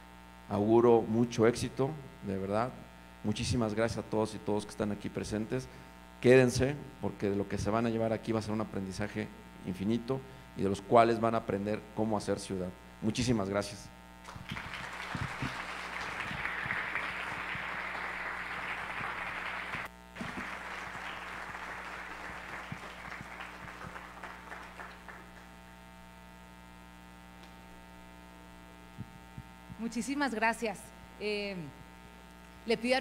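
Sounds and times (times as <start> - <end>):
steady electrical hum: 0.0 - 33.0
audience applauding: 14.2 - 25.7.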